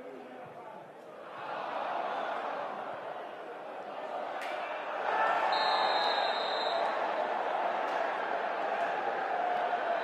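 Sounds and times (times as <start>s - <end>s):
stadium crowd shouting: 1.2s - 10.0s
referee's whistle blast: 5.5s - 6.9s.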